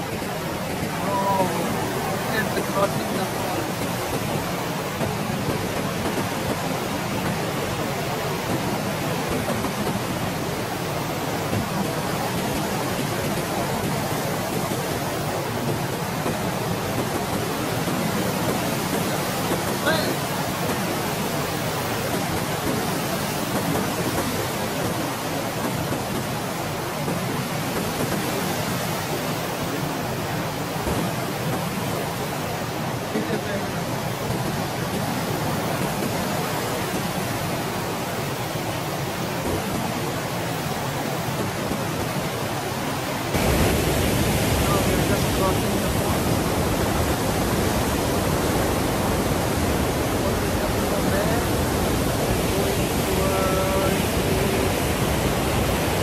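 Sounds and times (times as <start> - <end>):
rushing white water: 0.0 - 56.0.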